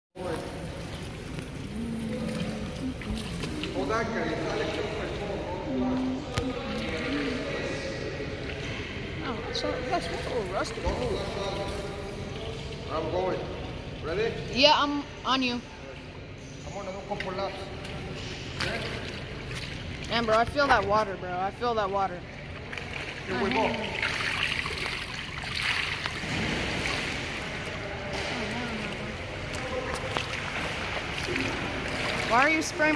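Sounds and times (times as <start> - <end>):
low rumble of indoor pool hall: 0.2 - 32.9
low tone: 0.6 - 9.6.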